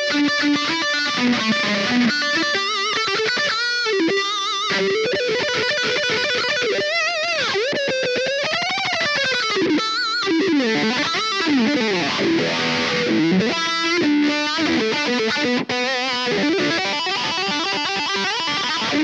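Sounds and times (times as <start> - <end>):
electric guitar playing lead: 0.0 - 19.0.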